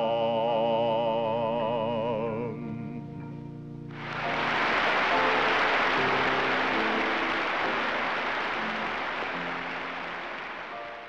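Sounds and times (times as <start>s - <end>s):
sung hymn: 0.0s - 11.0s
soft sustained instrumental chords: 1.7s - 11.0s
large audience applauding: 3.9s - 11.0s.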